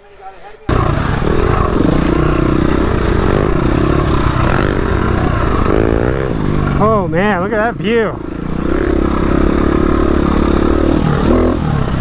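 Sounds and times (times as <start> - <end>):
dirt bike engine revving: 0.7 - 12.0.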